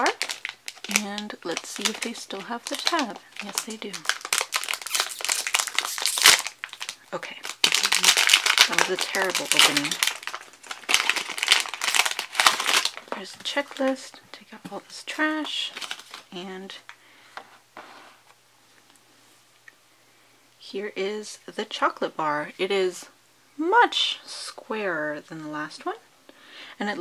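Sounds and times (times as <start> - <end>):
foil wrapper crinkling and tearing: 0.0 - 14.0, 15.4 - 16.3
soft rustle: 17.4 - 19.5.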